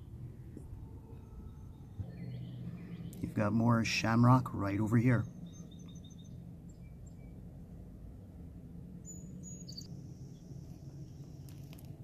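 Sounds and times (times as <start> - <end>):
low rumble: 0.0 - 12.0.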